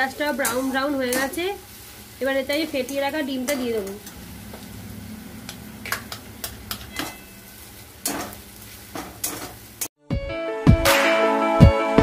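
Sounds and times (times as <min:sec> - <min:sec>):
metal spatula scraping wok: 0:00.0 - 0:09.8
low sizzle: 0:00.0 - 0:10.0
background music with beat: 0:10.0 - 0:12.0.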